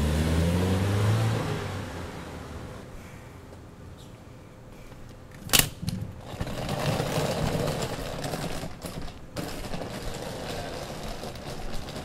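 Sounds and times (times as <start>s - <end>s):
suitcase wheels rattling on pavement: 5.8s - 12.0s.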